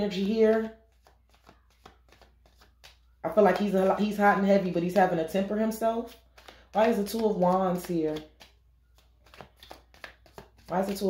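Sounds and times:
cards rustling and snapping: 0.1s - 11.0s.

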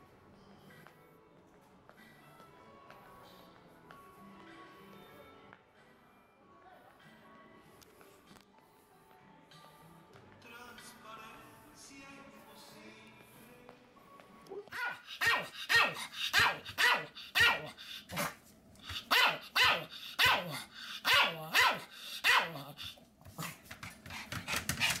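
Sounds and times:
small dog barking: 14.6s - 22.8s.

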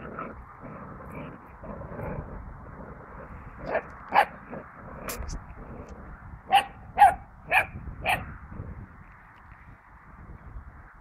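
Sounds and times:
puppy barking: 3.7s - 4.4s, 6.5s - 8.3s.

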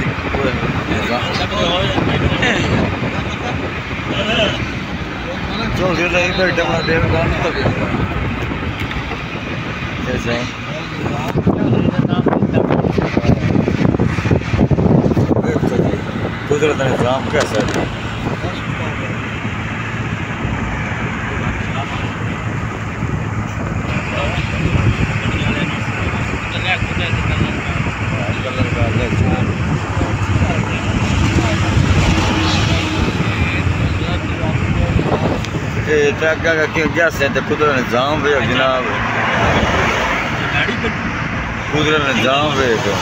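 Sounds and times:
tyres on asphalt: 0.0s - 43.0s
wind rushing past car: 0.0s - 43.0s.

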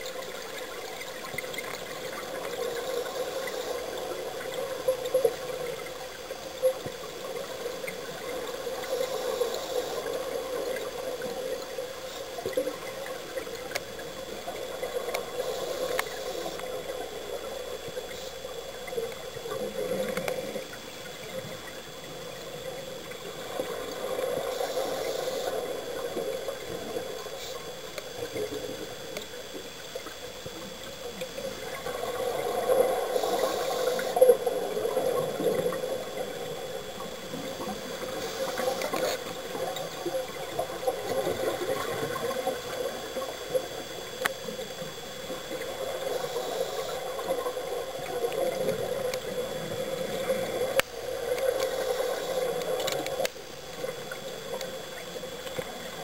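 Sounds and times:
regulator hiss: 0.0s - 56.0s.

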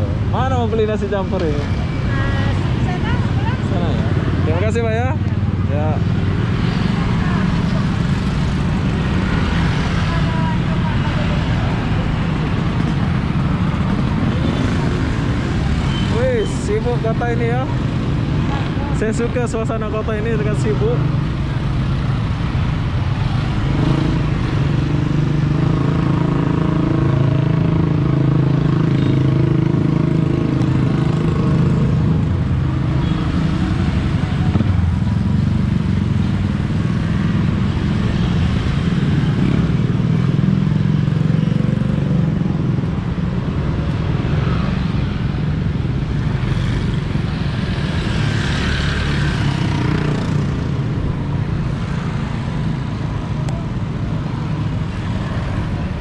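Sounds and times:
scooter traffic passing: 0.0s - 56.0s.

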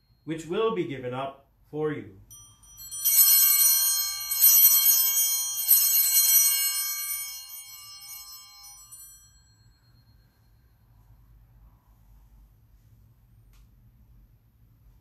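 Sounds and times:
altar bells ringing: 2.3s - 11.3s.

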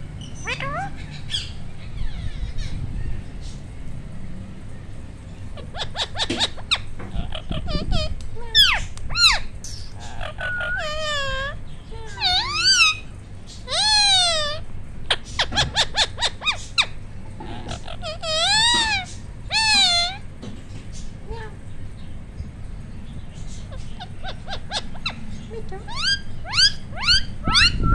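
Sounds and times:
parakeet rising and falling calls: 0.2s - 3.6s, 5.5s - 20.3s, 23.4s - 27.9s
parakeet chattering calls: 0.2s - 3.7s, 5.3s - 27.9s.

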